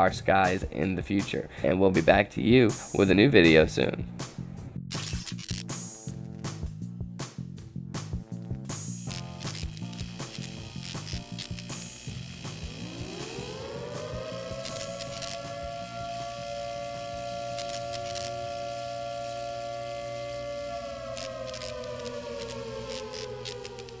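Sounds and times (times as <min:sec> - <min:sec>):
glitchy clicks: 0:04.9 - 0:05.8, 0:09.0 - 0:24.0
low pulsing beat: 0:09.0 - 0:24.0
siren-like synth tone: 0:09.1 - 0:24.0.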